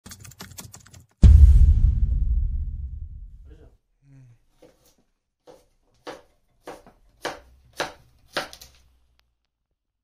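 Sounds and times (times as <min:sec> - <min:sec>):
deep bass boom: 0:01.2 - 0:03.5.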